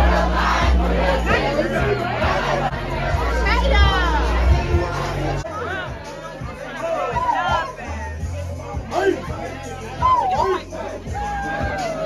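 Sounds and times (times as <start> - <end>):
crowd shouting and singing along: 0.0 - 12.0
party music with heavy bass: 0.0 - 12.0
loud shout: 6.8 - 7.8, 9.9 - 12.0.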